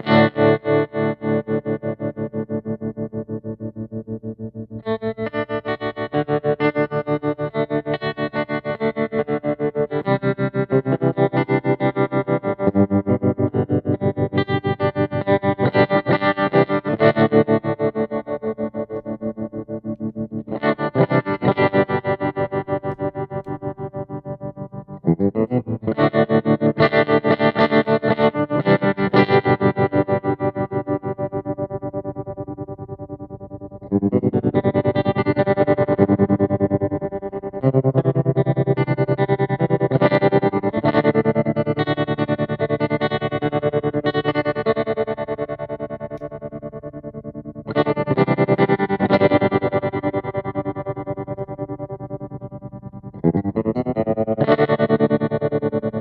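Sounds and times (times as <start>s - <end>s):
electric guitar chords ringing: 0.0s - 56.0s.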